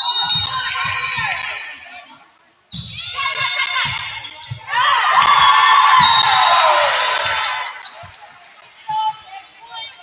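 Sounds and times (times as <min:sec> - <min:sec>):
crowd cheering and shouting: 0:03.0 - 0:07.8.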